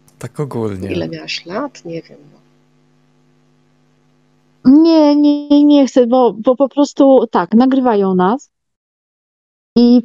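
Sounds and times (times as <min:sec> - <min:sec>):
electrical mains hum: 0:00.0 - 0:08.5, 0:09.8 - 0:10.0.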